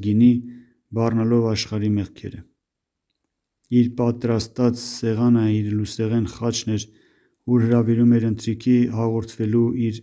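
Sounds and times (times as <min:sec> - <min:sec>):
man reading aloud: 0:00.0 - 0:02.6, 0:03.6 - 0:10.0.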